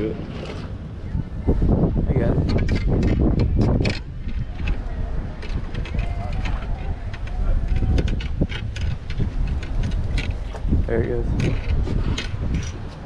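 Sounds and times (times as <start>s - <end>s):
wind buffeting microphone: 0.0s - 13.0s
indistinct voices: 4.3s - 11.7s.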